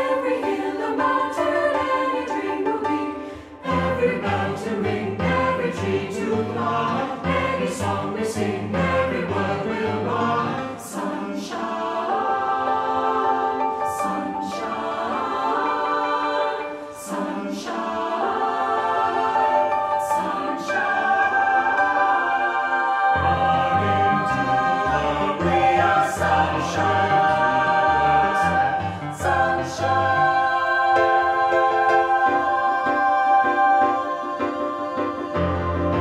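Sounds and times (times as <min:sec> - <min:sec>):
mixed choir singing: 0:00.0 - 0:36.0
piano accompaniment: 0:00.0 - 0:36.0.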